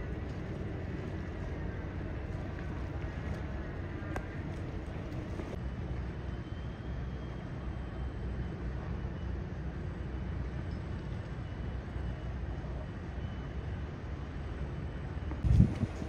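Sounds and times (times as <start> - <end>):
low outdoor rumble: 0.0 - 16.0.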